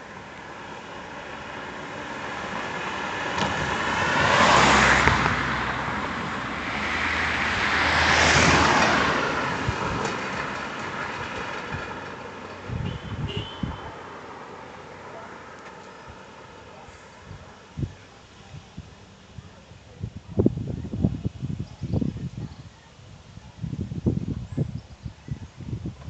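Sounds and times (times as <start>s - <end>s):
cars driving past: 0.0s - 17.8s.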